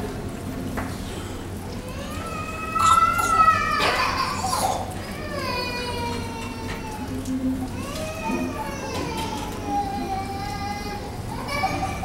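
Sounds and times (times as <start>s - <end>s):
small child crying out: 1.8s - 12.0s.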